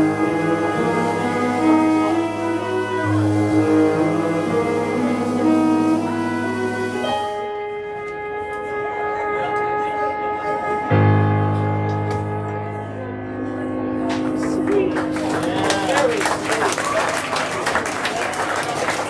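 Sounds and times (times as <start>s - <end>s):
jazz big band playing: 0.0s - 19.0s.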